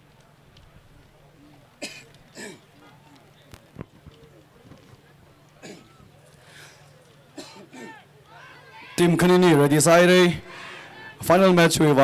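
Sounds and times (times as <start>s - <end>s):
faint voices: 0.0s - 12.0s
person coughing: 7.4s - 8.0s.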